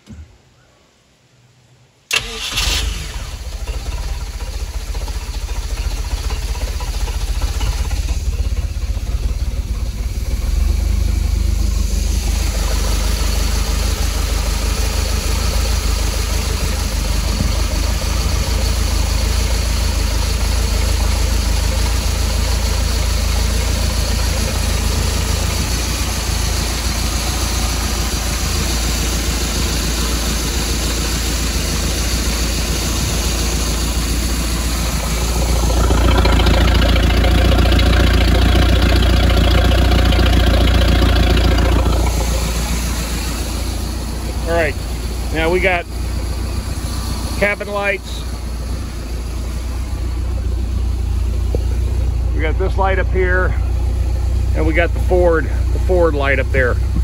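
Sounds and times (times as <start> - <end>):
boat engine idling: 2.1 - 57.0.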